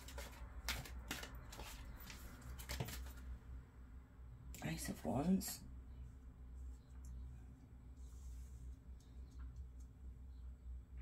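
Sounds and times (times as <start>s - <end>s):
cards being shuffled: 0.0s - 3.3s.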